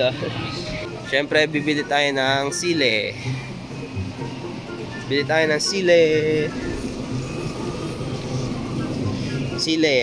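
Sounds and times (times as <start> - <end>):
store background hum: 0.0 - 10.0.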